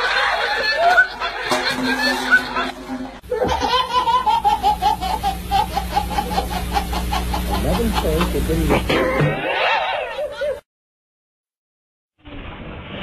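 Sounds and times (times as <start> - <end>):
person laughing hard: 0.0 - 10.6.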